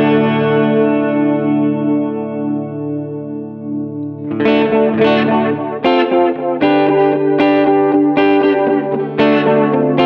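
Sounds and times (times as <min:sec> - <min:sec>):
electric guitar chord with reverb: 0:00.0 - 0:10.0.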